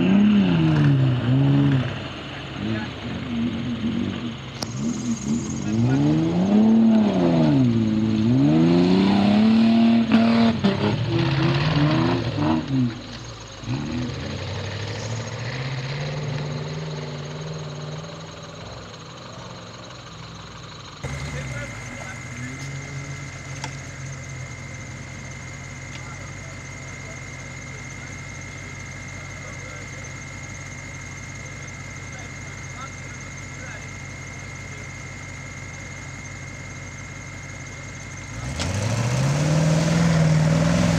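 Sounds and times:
off-road truck engine revving: 0:00.0 - 0:40.9
steady high whine: 0:00.0 - 0:40.9.

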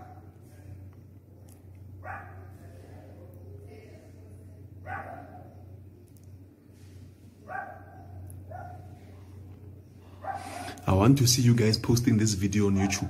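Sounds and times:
steady low hum: 0:00.0 - 0:13.0
dog barking: 0:02.0 - 0:02.7, 0:04.8 - 0:05.5, 0:07.4 - 0:09.0, 0:10.2 - 0:10.7, 0:12.7 - 0:13.0.

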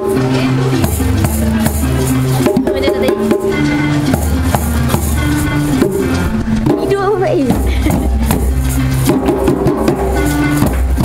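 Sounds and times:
bass and melody notes: 0:00.0 - 0:11.0
djembe drums played by group: 0:00.0 - 0:11.0.

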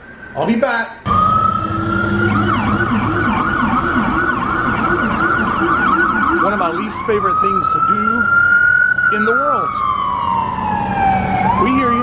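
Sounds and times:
ambulance siren: 0:00.0 - 0:12.0.

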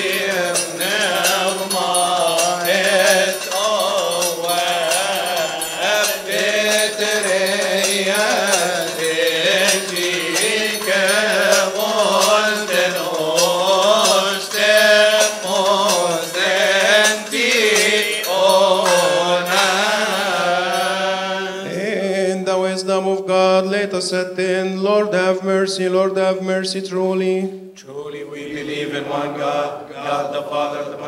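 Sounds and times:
men chanting a hymn in unison: 0:00.0 - 0:31.0.

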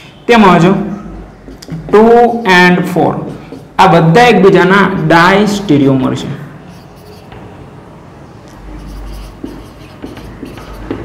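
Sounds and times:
marker pen writing on whiteboard: 0:00.9 - 0:04.1, 0:06.6 - 0:07.6, 0:08.4 - 0:11.0.

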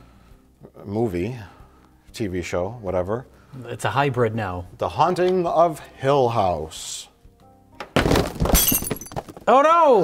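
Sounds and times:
glass shattering: 0:08.0 - 0:09.4
shards tinkling: 0:08.6 - 0:09.2.

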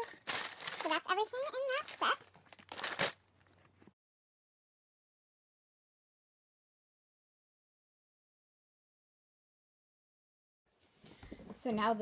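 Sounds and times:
tissue paper rustling: 0:00.0 - 0:03.2.

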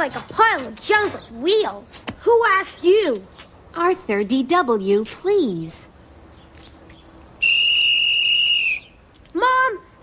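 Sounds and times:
shrill safety whistle blast: 0:07.4 - 0:08.9.

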